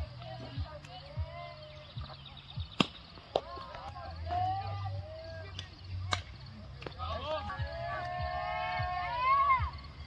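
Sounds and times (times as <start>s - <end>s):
high-pitched long shout: 7.7s - 9.8s.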